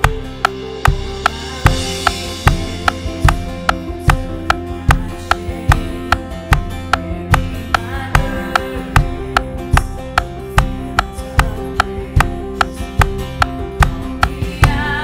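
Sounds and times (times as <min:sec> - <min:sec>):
sharp click on the beat: 0:00.0 - 0:14.8
kick drum: 0:00.0 - 0:14.9
sustained keyboard and bass: 0:00.0 - 0:15.0.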